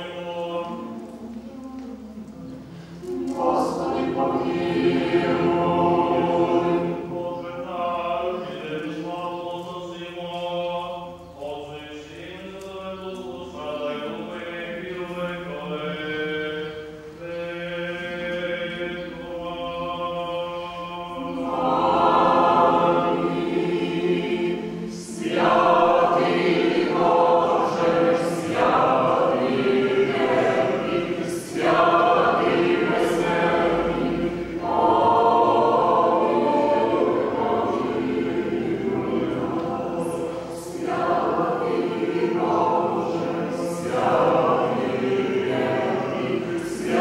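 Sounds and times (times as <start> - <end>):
choir singing a cappella chant: 0.0 - 47.0.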